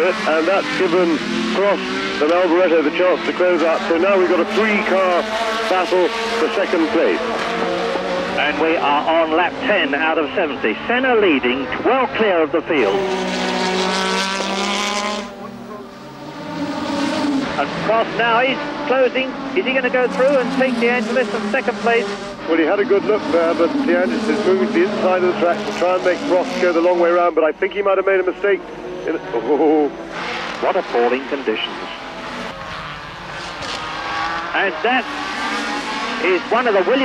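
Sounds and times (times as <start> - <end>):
racing car engines: 0.0 - 37.0
racing car engine high note: 12.8 - 26.8.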